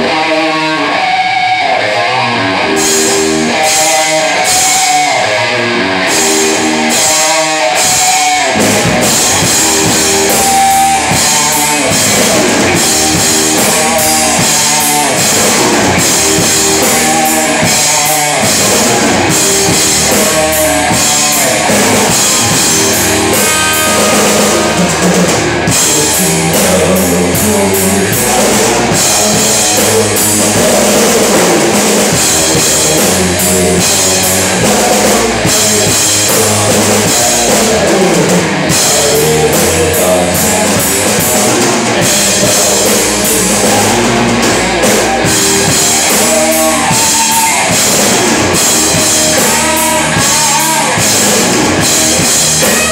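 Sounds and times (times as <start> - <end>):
bass guitar: 0.0 - 52.9
drum kit: 0.0 - 52.9
electric guitar riff: 0.0 - 52.9.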